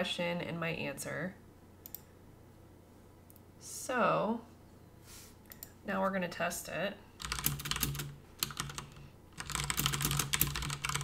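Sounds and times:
computer keyboard typing: 7.2s - 11.0s.

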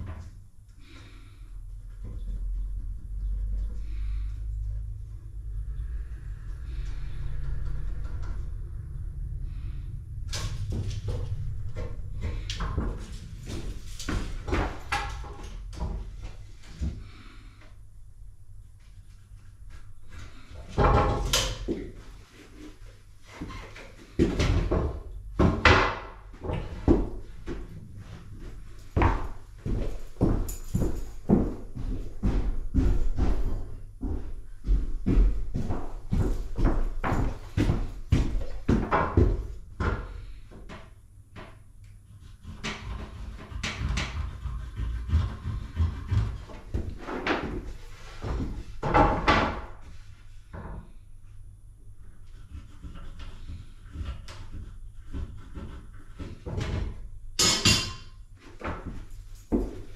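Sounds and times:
footsteps on wooden subfloor: 10.6s - 17.6s, 19.7s - 41.5s, 45.9s - 51.0s, 58.4s - 59.9s
trim boards knocking and thumping: 20.7s - 22.0s, 24.1s - 27.6s, 42.5s - 49.8s.

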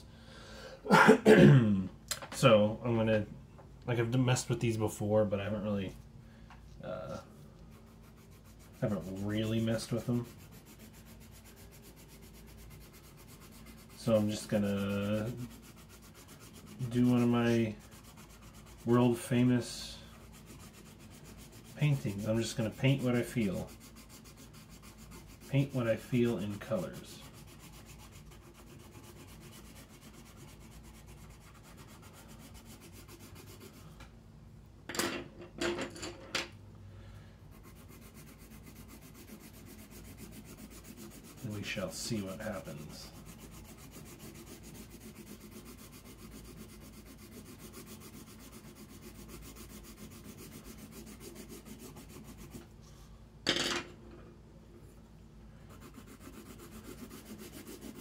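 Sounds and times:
pencil rubbing on paper: 7.6s - 34.0s, 37.5s - 52.7s, 55.7s - 58.0s.

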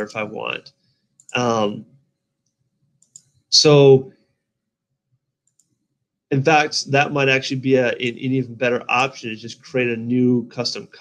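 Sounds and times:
spoken word: 0.0s - 0.6s, 1.4s - 1.8s, 3.6s - 4.0s, 6.3s - 11.0s
computer mouse click: 2.4s - 3.4s, 5.4s - 5.8s.

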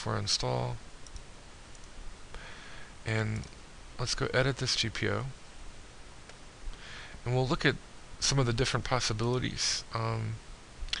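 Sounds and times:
low background hiss: 0.0s - 11.0s
faint computer mouse clicks: 1.0s - 2.0s.

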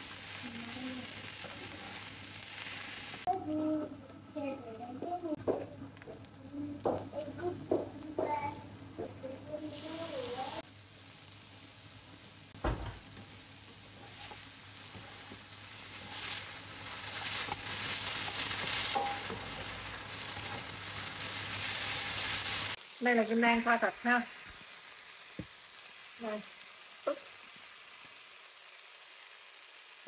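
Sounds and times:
food sizzling in a pan: 0.0s - 30.0s
spoon and spatula scraping: 13.9s - 22.6s.

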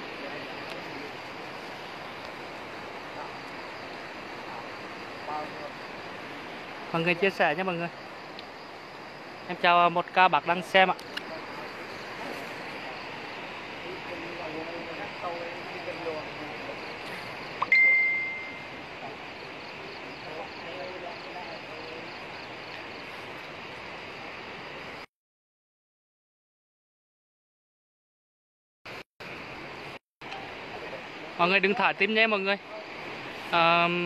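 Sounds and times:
background hiss: 0.0s - 25.1s, 28.9s - 34.0s
smartphone notification ding: 17.6s - 18.6s.

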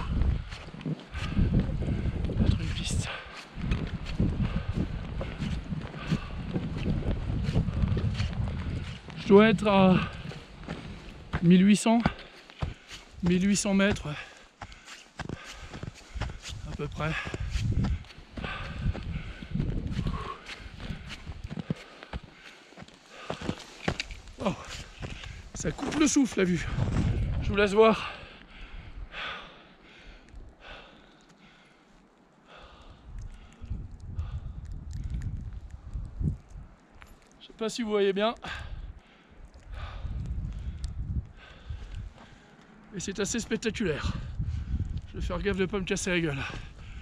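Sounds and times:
wind rumbling on microphone: 0.0s - 22.4s, 23.2s - 29.4s, 32.5s - 37.4s, 38.5s - 47.0s
footsteps in deep snow: 0.0s - 28.3s
person breathing: 4.4s - 6.5s, 14.1s - 16.6s, 17.2s - 25.6s, 28.0s - 35.3s, 38.4s - 42.8s, 46.5s - 47.0s.

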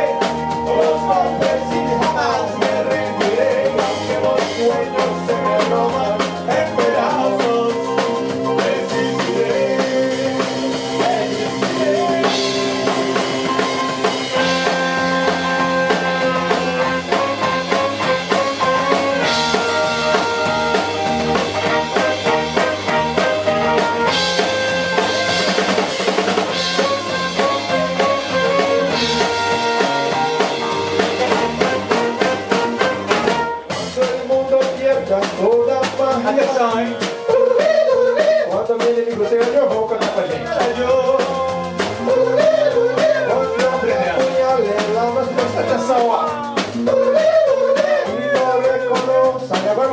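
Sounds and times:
saxophone melody: 0.0s - 34.0s
trumpet melody: 0.0s - 34.4s
drum kit beat: 0.0s - 49.9s
electric guitar: 0.0s - 49.9s
keyboard: 0.0s - 49.9s.

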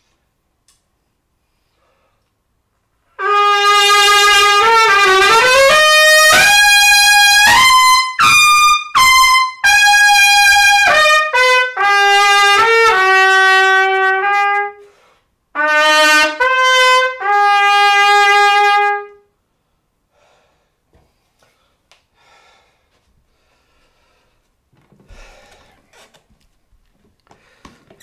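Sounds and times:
loud solo trumpet: 3.1s - 19.3s.

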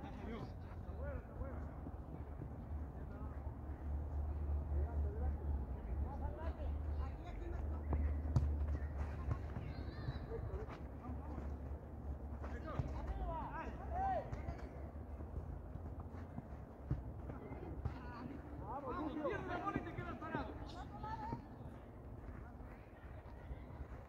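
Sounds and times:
distant players shouting: 12.5s - 14.9s.

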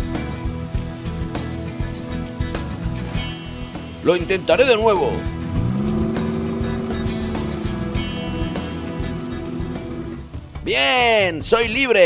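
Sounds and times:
background music: 0.0s - 12.0s
truck engine revving: 3.0s - 10.6s.

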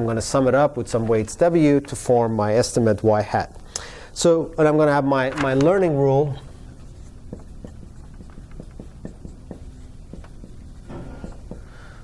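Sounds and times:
marker writing on whiteboard: 6.5s - 11.9s.

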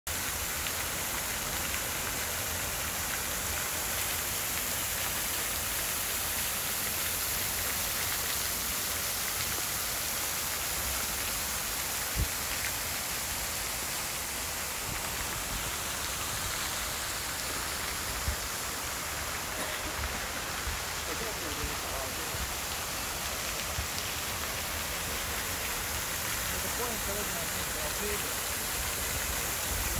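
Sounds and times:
fountain water splashing: 0.1s - 29.9s.

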